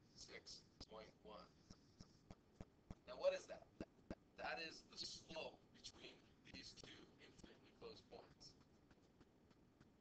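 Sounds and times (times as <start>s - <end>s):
whispered speech: 5.8s - 8.6s.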